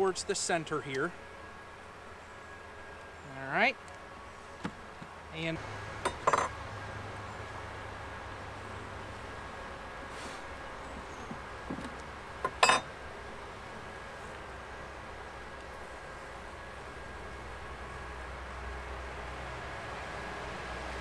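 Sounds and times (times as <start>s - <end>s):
low background noise: 0.0s - 21.0s.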